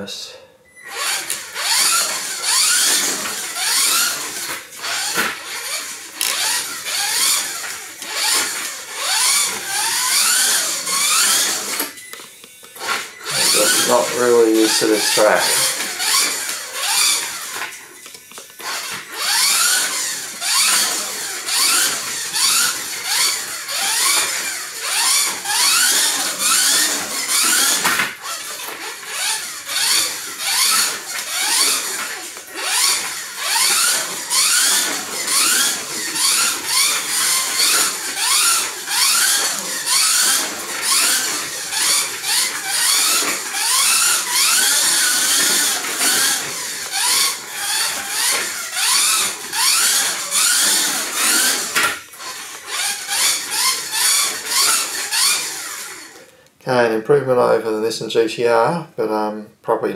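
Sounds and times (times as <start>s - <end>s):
toy car electric motor whining: 0.7s - 56.5s.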